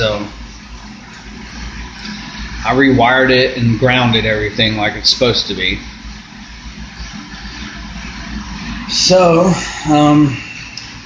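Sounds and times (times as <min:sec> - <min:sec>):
machinery humming and rumbling: 0:00.0 - 0:11.0.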